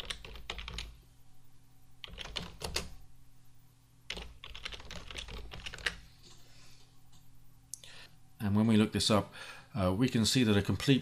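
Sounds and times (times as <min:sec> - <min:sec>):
typing on computer keyboard: 0:00.0 - 0:01.0, 0:02.0 - 0:02.9, 0:04.1 - 0:06.0.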